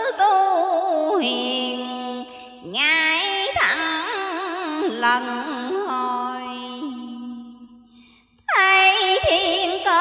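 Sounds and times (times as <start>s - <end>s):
woman chanting verse: 0.0s - 7.9s, 8.5s - 10.0s.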